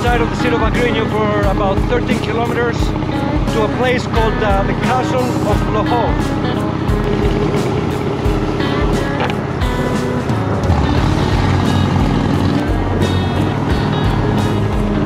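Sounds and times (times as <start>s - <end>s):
background music with beat: 0.0s - 15.0s
motorcycle engine running: 0.0s - 15.0s.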